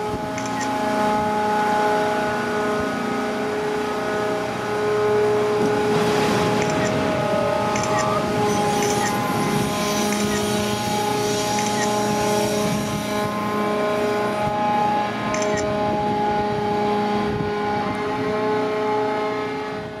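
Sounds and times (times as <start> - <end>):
crane machinery humming: 0.0 - 20.0
water pouring and splashing into sea: 4.8 - 14.6.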